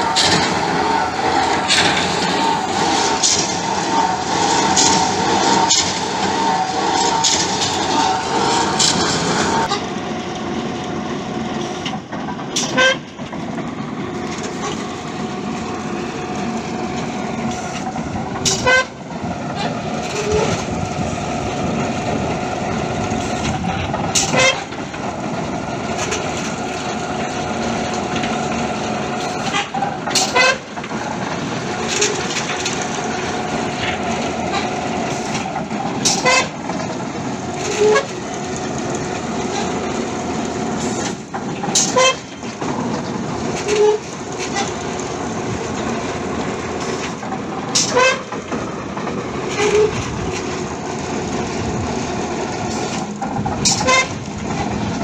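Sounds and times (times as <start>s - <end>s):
boring rig whining: 0.0s - 10.3s.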